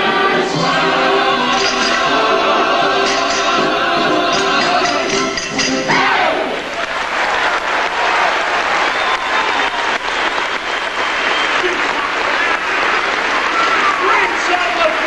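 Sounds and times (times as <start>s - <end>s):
orchestra and chorus music: 0.0s - 6.7s
audience applauding: 6.5s - 15.0s.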